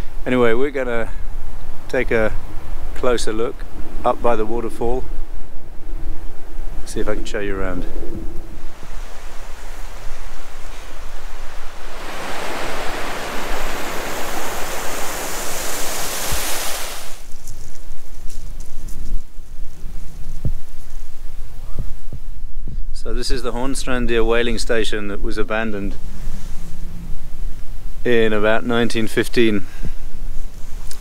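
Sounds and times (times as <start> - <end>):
wind buffeting microphone: 3.7 - 23.0
stream rushing: 8.5 - 17.4.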